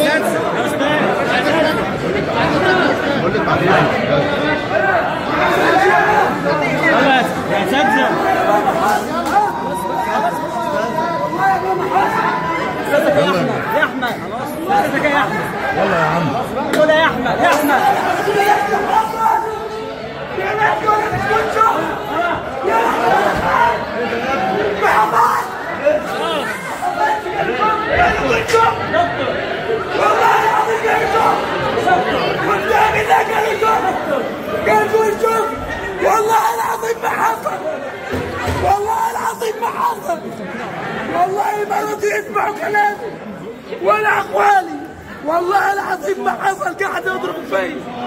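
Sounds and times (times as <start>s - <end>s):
many people talking: 0.0s - 48.0s.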